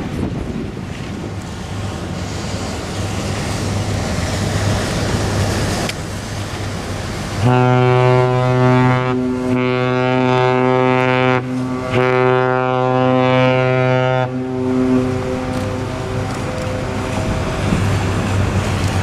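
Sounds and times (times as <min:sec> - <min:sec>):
water noise: 0:00.0 - 0:19.0
wind: 0:00.0 - 0:19.0
ship's horn blasts: 0:07.4 - 0:18.3.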